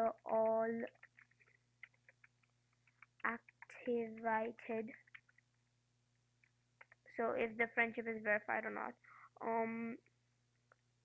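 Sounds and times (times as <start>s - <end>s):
keyboard typing: 0.0s - 5.5s, 6.4s - 7.1s.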